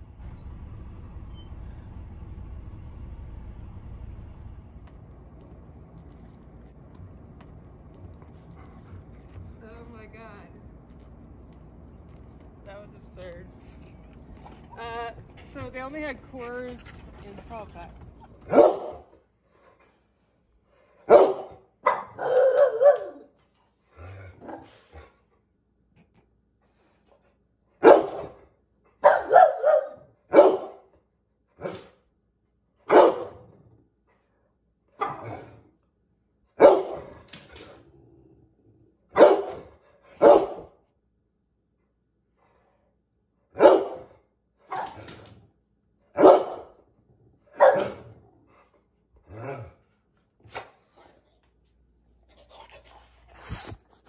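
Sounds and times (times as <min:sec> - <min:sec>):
dog barking: 0:18.5 - 0:19.1, 0:21.1 - 0:23.3, 0:27.8 - 0:28.4, 0:29.0 - 0:30.8, 0:32.9 - 0:33.4, 0:35.0 - 0:35.5, 0:36.6 - 0:37.2, 0:39.1 - 0:40.8, 0:43.5 - 0:45.0, 0:46.2 - 0:46.8, 0:47.5 - 0:48.1.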